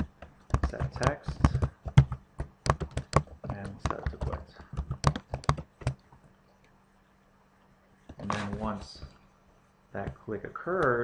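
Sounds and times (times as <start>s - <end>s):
typing on computer keyboard: 0.0s - 6.0s.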